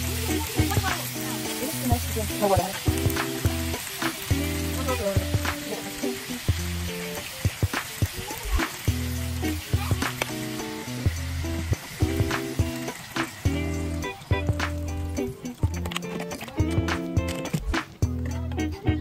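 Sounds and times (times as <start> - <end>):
background music with low chords: 0.0 - 19.0
fish sizzling in a frying pan: 0.0 - 19.0.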